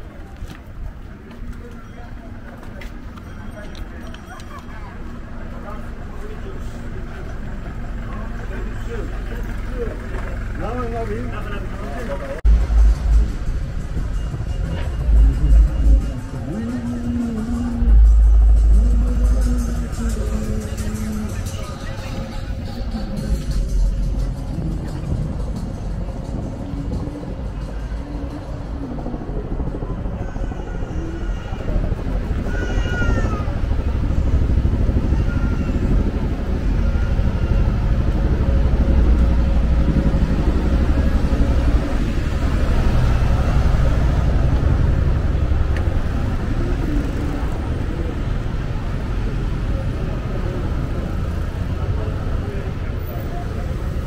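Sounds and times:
traffic engine rumble: 0.0 - 54.0
background voices: 11.9 - 32.6.

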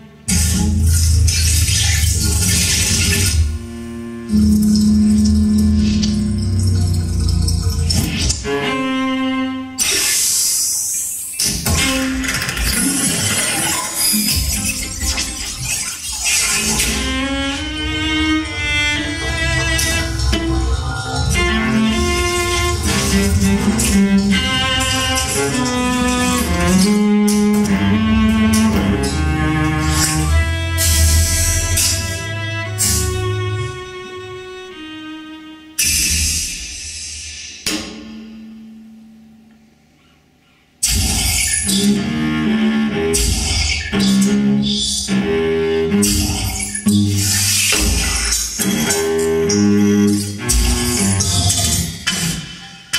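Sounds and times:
sharp percussive hit: 35.8 - 39.1.

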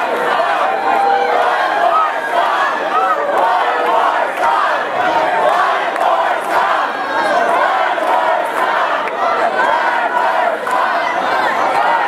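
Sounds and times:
audience shouting and cheering: 0.0 - 12.0.

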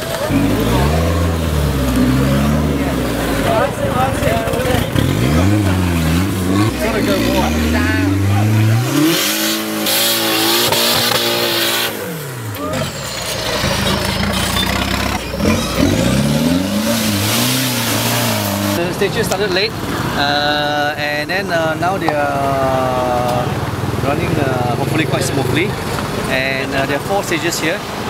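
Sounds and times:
off-road engines revving: 0.0 - 28.0.

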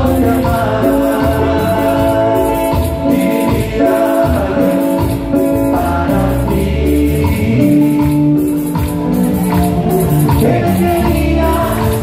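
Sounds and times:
man singing: 0.0 - 8.7, 9.9 - 12.0
bass line: 0.0 - 12.0
percussion rhythm: 0.0 - 12.0.

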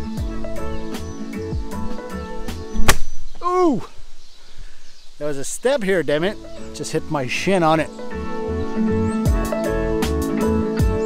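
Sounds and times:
background music with steady beat: 0.0 - 3.1, 6.3 - 11.0.

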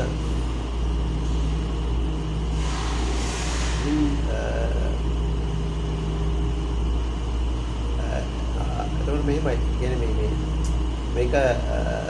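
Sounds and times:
hum: 0.0 - 12.0
low mechanical rumble: 0.0 - 12.0
rush of hiss: 2.6 - 4.2.

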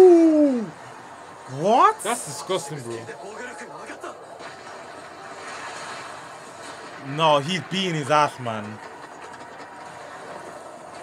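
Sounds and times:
soundtrack rumble: 0.0 - 11.0.

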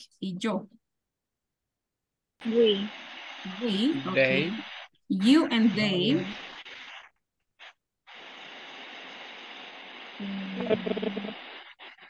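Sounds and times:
microphone line hiss: 2.4 - 12.0
low hum with faint crackle: 8.2 - 12.0.

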